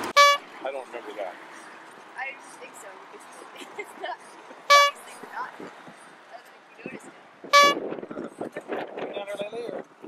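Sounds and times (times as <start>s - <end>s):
horn toot: 0.0s - 0.4s, 4.7s - 5.0s, 7.5s - 7.8s
faint street traffic: 0.0s - 10.0s
voices: 6.3s - 9.8s.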